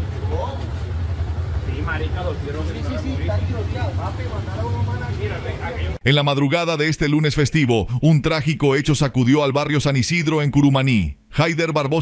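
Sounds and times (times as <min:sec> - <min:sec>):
motorcycle engine idling: 0:00.0 - 0:05.9.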